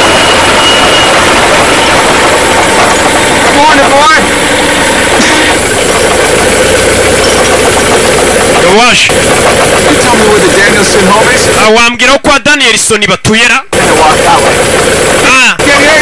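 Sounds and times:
truck engine idling: 0:00.0 - 0:12.1, 0:13.7 - 0:16.0
voices: 0:03.4 - 0:04.4, 0:08.5 - 0:16.0.

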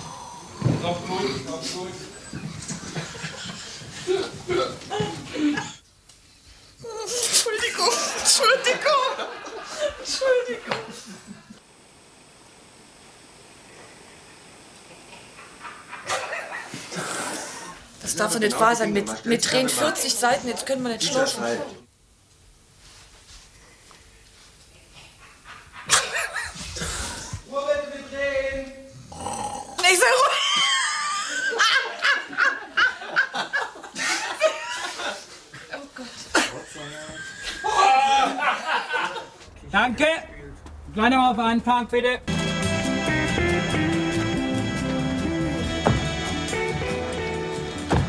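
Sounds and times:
steady hiss: 0:00.0 - 0:21.0, 0:21.6 - 0:37.7
thin high continuous whine: 0:00.0 - 0:47.9
people laughing heartily: 0:02.4 - 0:05.8, 0:07.6 - 0:11.6, 0:15.4 - 0:17.0, 0:25.4 - 0:26.7, 0:30.3 - 0:39.5.

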